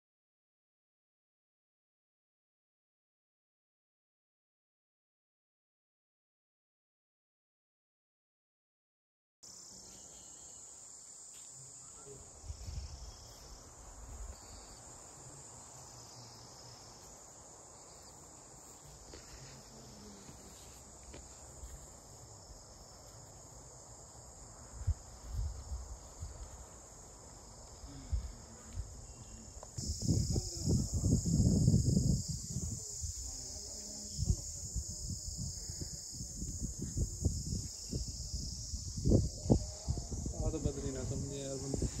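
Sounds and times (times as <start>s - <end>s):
insects singing: 9.5s - 42.0s.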